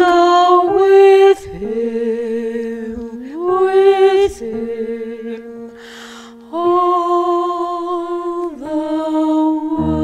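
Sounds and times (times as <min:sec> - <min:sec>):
woman singing: 0:00.0 - 0:05.6, 0:06.5 - 0:10.0
piano accompaniment: 0:09.6 - 0:10.0.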